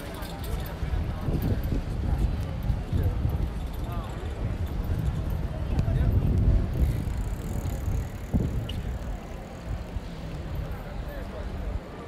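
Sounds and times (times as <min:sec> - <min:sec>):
bicycle rolling on stone paving: 0:00.0 - 0:12.0.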